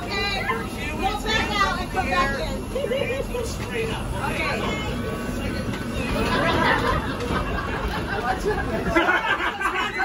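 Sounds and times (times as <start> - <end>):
passengers talking: 0.0 - 10.0
train car rumbling: 0.0 - 10.0.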